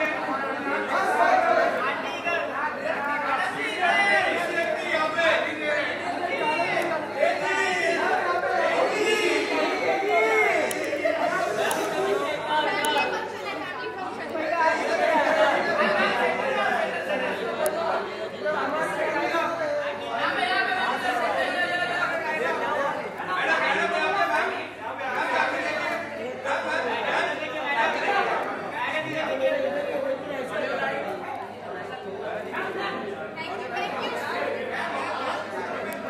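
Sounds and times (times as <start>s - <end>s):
crowd chatter: 0.0s - 36.0s.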